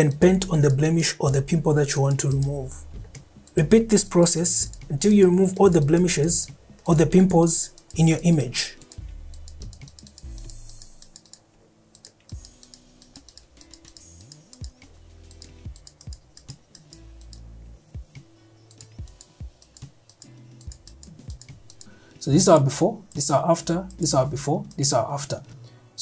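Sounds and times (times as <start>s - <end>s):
soft background music: 0.0s - 26.0s
mouse and keyboard clicking: 2.0s - 2.6s, 3.4s - 11.4s, 12.0s - 17.4s, 18.7s - 21.9s.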